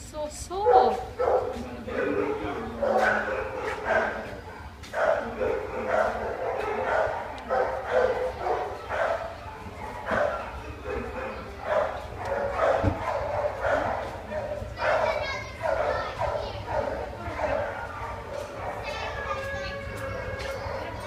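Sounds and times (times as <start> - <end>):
dogs barking and yipping: 0.5 - 21.0
dogs whining: 0.7 - 21.0.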